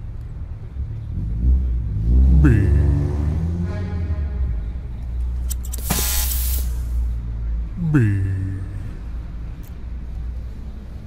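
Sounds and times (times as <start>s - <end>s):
short hiss burst: 5.7s - 7.1s.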